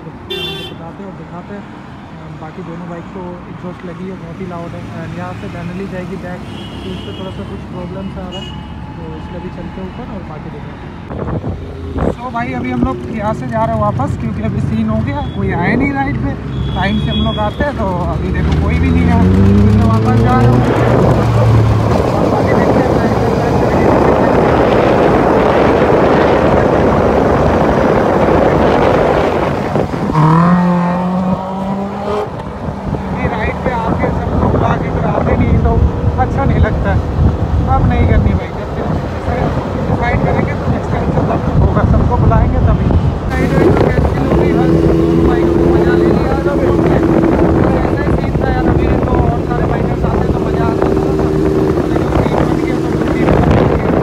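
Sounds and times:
motorcycle engines: 0.0s - 54.0s
wind rush on microphone: 10.8s - 16.4s, 17.5s - 54.0s
engine revving through gears: 17.8s - 33.4s.

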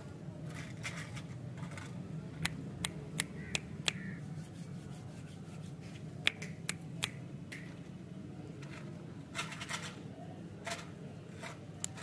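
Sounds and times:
finger snaps: 6.2s - 7.2s.

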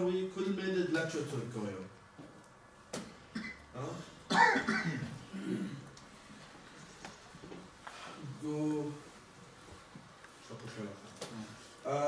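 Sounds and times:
person clearing throat: 3.3s - 5.9s
person coughing: 3.3s - 5.9s.

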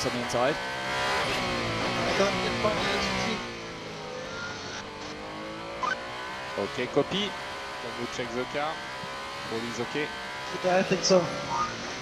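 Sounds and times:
race car engine onboard: 0.0s - 12.0s.

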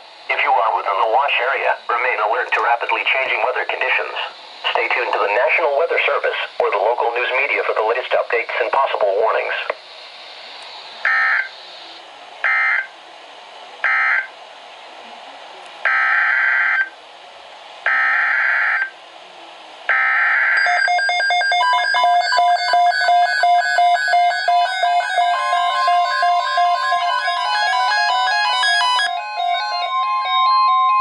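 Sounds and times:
digital data bursts: 0.3s - 11.8s, 19.9s - 31.0s
electronic alarm beeps: 11.1s - 11.6s, 19.9s - 31.0s.

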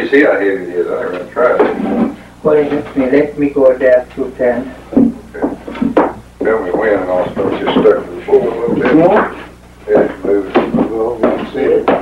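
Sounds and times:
men talking: 0.0s - 2.9s, 5.2s - 12.0s.

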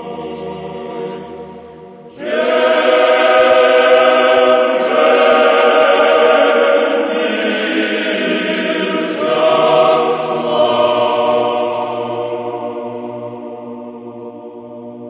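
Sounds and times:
choir singing sustained chords: 0.0s - 15.0s.

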